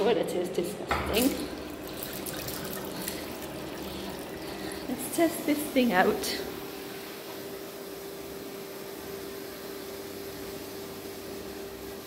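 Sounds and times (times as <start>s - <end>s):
tap water running into basin: 0.9s - 6.8s.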